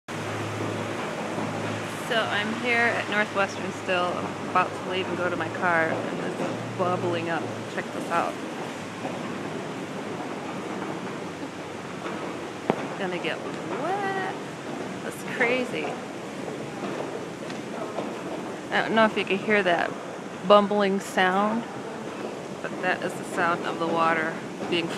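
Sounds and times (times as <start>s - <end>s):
low steady hum: 0.1s - 24.9s
steady rushing noise: 0.1s - 24.9s
water bubbling through vents: 0.1s - 24.9s.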